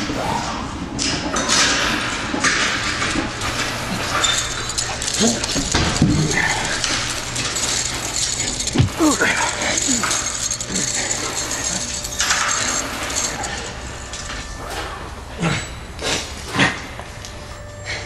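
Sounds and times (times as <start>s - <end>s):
man's strained cries: 8.8s - 10.1s.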